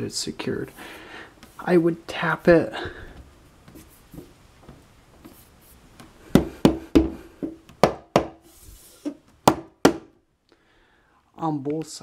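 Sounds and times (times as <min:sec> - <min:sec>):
hand tapping on wooden shelf: 0:06.3 - 0:08.4.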